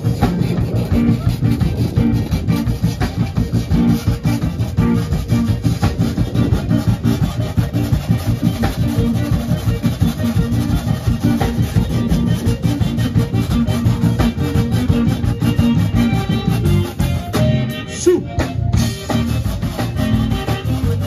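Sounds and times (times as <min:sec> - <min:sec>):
accordion: 0:00.0 - 0:21.0
live band playing: 0:00.0 - 0:21.0.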